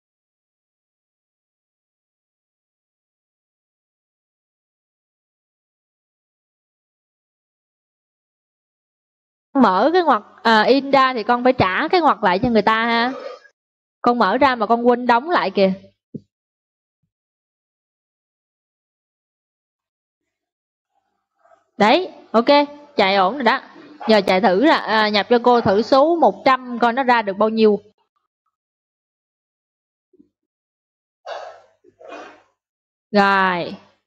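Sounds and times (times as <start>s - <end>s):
breathy exhalations: 31.3s - 32.5s.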